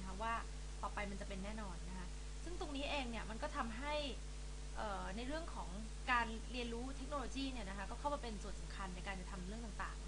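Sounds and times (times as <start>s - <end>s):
low electrical hum: 0.0s - 10.0s
woman talking: 0.0s - 10.0s.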